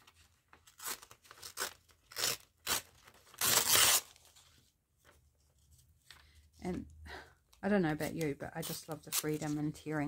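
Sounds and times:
paper tearing: 0.6 - 4.3.

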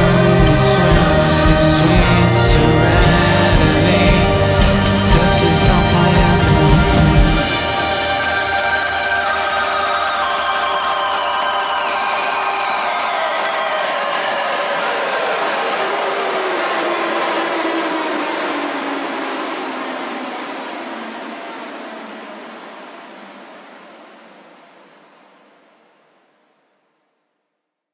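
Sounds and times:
electric guitar drone sliding down: 0.0 - 26.0.

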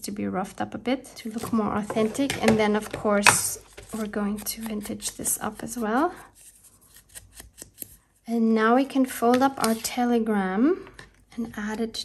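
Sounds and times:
paper being handled: 3.6 - 8.0.

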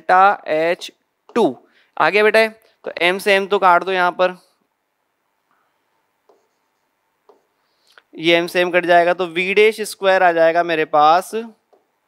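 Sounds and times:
pen writing on board: 6.2 - 7.6.

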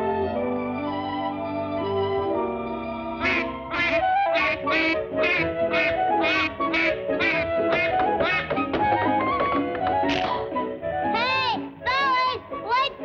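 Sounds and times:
orchestral cartoon music: 0.0 - 13.0
cartoon duck quacking: 3.2 - 8.8, 10.1 - 10.4.

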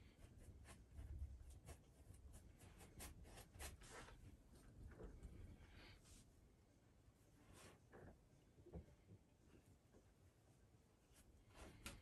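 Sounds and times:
paint brush scratching on canvas: 0.0 - 4.4.

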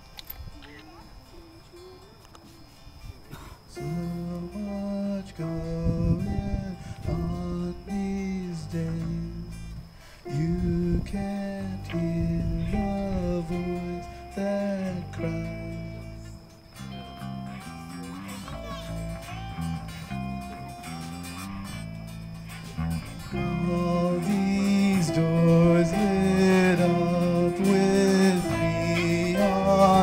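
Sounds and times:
bass: 3.8 - 30.0
lap steel guitar melody: 3.8 - 30.0
strummed acoustic guitar: 11.3 - 30.0.

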